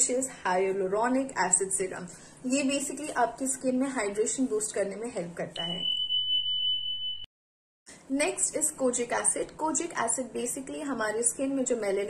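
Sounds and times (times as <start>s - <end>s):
high electronic beep: 5.6s - 7.3s.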